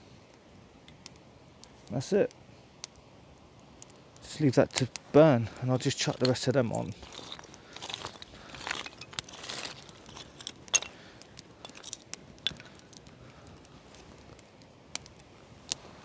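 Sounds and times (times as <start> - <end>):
campfire crackling and popping: 0.0 - 16.0
rustle of movement: 1.0 - 16.0.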